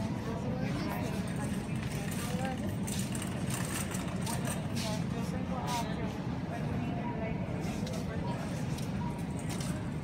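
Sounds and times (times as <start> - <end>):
faint voices: 0.0 - 10.0
shopping cart wheels rumbling: 0.3 - 5.2.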